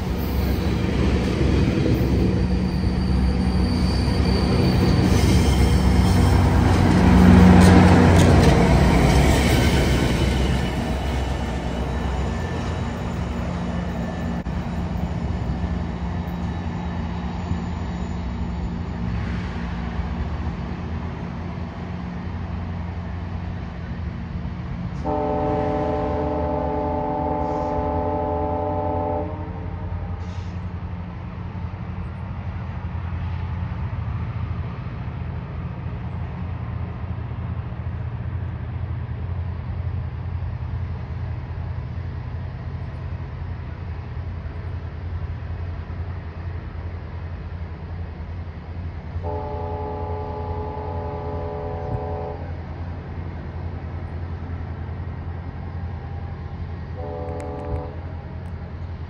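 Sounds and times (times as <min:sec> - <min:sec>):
passenger train rumbling past: 0:00.0 - 0:59.0
distant train horn: 0:25.0 - 0:30.0, 0:49.2 - 0:52.7, 0:56.9 - 0:58.2.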